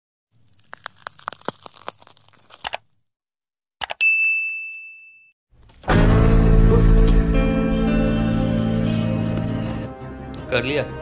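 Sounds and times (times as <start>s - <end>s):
small clicks: 3.8s - 4.0s
bright bell-like ding: 4.0s - 5.4s
music: 5.6s - 11.0s.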